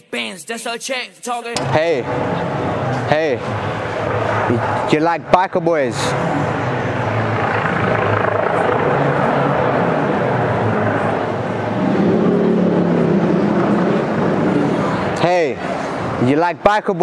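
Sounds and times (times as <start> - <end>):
motor engine humming: 1.6 - 16.2.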